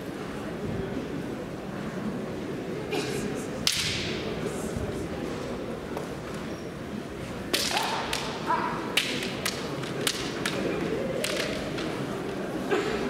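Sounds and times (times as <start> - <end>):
bamboo swords clashing: 3.7 - 4.2, 7.5 - 11.9.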